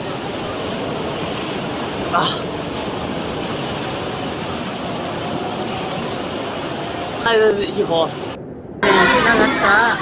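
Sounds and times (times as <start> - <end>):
floodwater rushing: 0.0 - 10.0.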